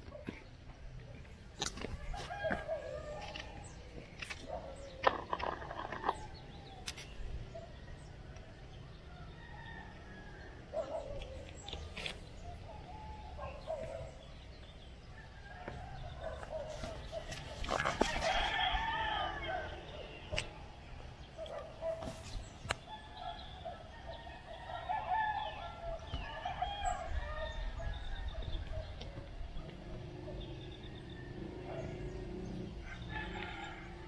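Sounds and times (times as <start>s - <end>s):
rooster crowing: 2.0s - 3.5s, 18.0s - 19.8s, 32.8s - 34.0s.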